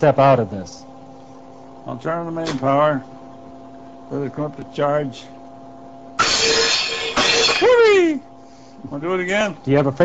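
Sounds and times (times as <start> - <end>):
loud electrical bang: 6.2 - 7.8
metal disc crashing down: 6.2 - 7.8
ringing clattering noise: 6.2 - 7.8.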